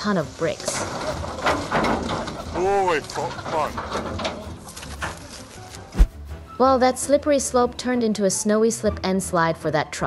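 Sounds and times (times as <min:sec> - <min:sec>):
sharp thump: 0:05.9 - 0:06.2.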